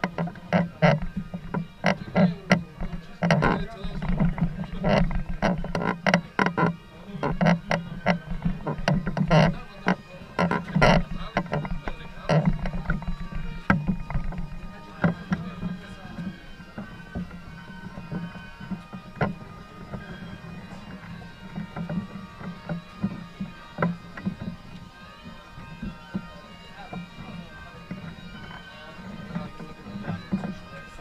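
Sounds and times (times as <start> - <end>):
faint band music: 0.0 - 31.0
murmur of voices: 0.0 - 31.0
wooden poles knocking and creaking: 0.0 - 31.0.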